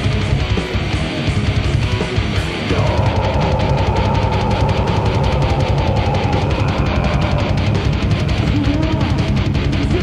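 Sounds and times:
distorted guitar: 0.0 - 10.0
fast drum beat: 0.0 - 10.0
held guitar note: 2.5 - 9.5.

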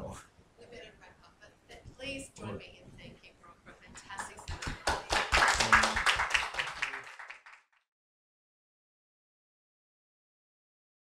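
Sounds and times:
audience applauding: 4.2 - 7.8.

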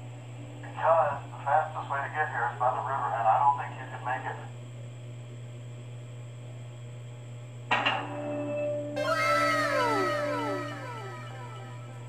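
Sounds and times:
low electrical hum: 0.0 - 12.0
overlapping falling tones: 9.0 - 12.0
sharp electronic hit: 9.0 - 12.0.

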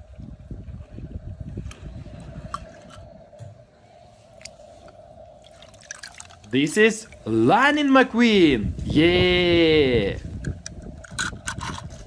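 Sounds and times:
water dripping and sloshing: 4.2 - 7.3.

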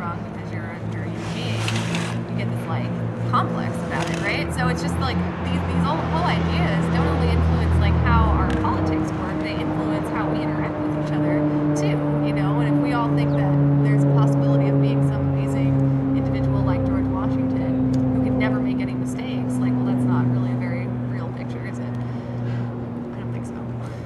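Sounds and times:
indistinct voices: 0.0 - 21.9
vehicle engine humming: 0.0 - 24.0.

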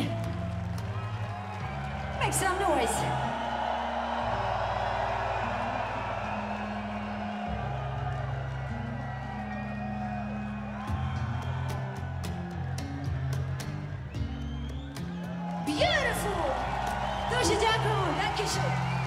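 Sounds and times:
crowd cheering and whooping: 0.0 - 19.0.

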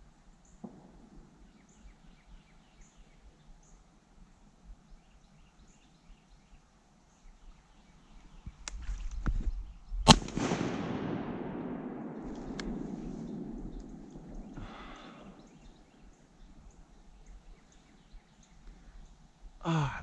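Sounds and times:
shotgun shot with rolling echo: 0.6 - 1.6, 10.1 - 16.3.

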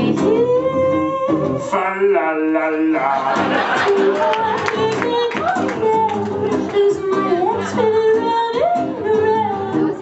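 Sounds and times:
woman singing operatically: 0.0 - 1.7, 3.8 - 10.0
strummed acoustic guitar: 1.5 - 10.0.

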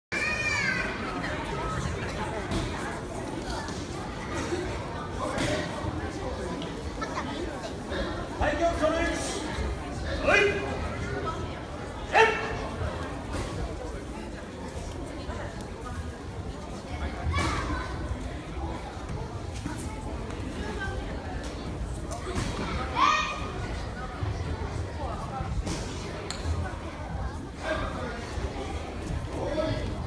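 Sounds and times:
children chattering: 0.1 - 30.0.

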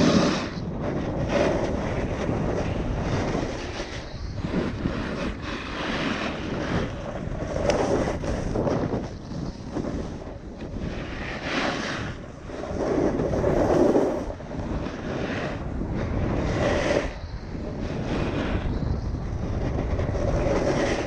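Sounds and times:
snowboard scraping over snow: 0.0 - 21.0
wind rushing over microphone: 0.0 - 21.0.

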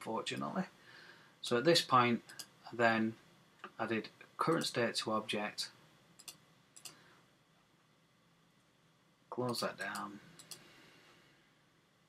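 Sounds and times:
computer mouse clicks: 2.3 - 2.5, 6.2 - 7.0, 9.5 - 10.6.

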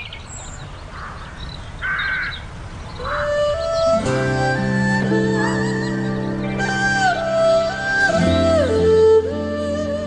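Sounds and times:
music with rising melody: 3.3 - 10.0.

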